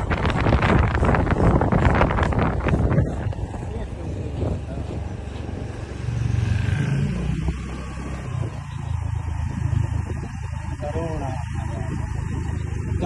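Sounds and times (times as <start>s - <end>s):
rushing air noise: 0.0s - 8.6s
vehicle engine running: 0.0s - 13.0s.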